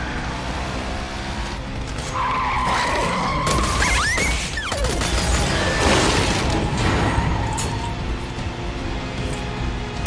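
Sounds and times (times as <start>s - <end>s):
tyres squealing in a skid: 2.0s - 4.8s, 5.4s - 8.0s.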